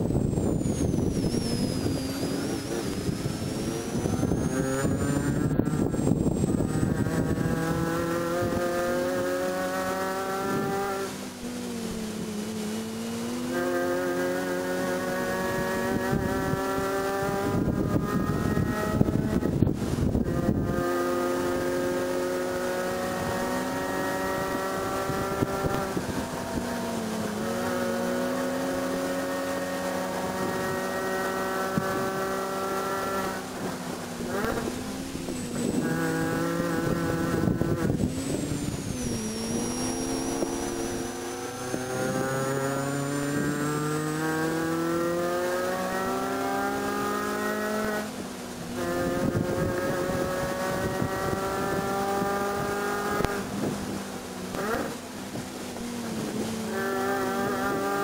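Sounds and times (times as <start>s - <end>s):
car engine revving hard: 0.0s - 58.0s.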